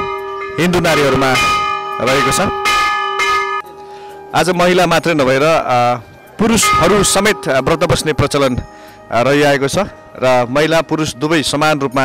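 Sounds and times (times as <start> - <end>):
temple bell ringing: 0.0 - 12.0.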